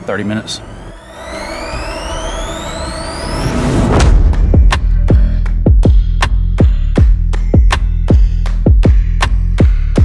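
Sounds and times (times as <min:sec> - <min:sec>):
rising high whistling tones: 0:00.0 - 0:05.7
low rumble: 0:00.5 - 0:08.4.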